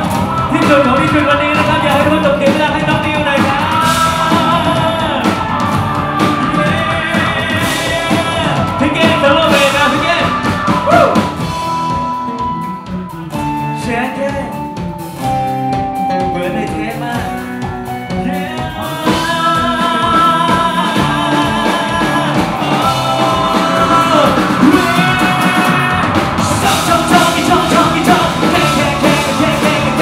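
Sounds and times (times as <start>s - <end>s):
person singing: 0.0s - 14.9s, 15.9s - 30.0s
live rock band playing: 0.0s - 30.0s.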